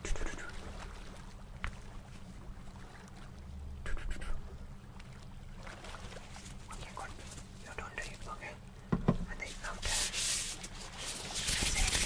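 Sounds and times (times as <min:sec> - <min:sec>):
soft whispering: 0:00.0 - 0:00.7, 0:03.8 - 0:04.5, 0:06.7 - 0:08.6, 0:09.2 - 0:10.4.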